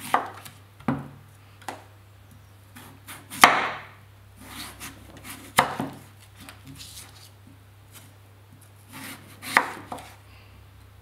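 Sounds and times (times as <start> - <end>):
knife slicing scrapes: 4.4 - 7.3, 8.9 - 10.2
knife cutting onto wooden board: 8.9 - 10.2.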